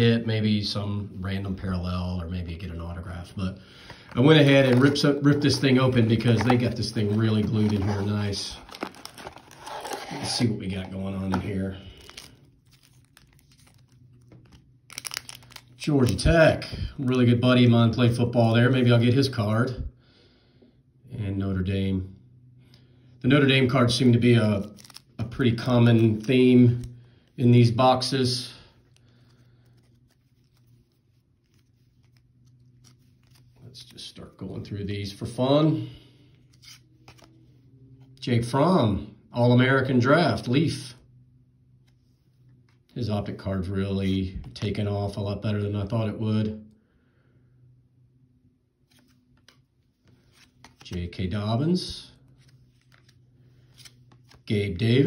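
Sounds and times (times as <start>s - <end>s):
low room hum: 0.0s - 55.0s
trading cards clicking and rustling: 3.8s - 16.3s, 24.6s - 27.7s, 48.9s - 51.2s.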